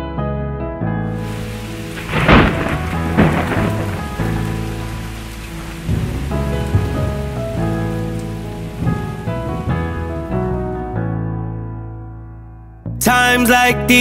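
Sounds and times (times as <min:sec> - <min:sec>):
steady rain: 0:01.1 - 0:11.0
thunder rumbling: 0:01.2 - 0:11.2.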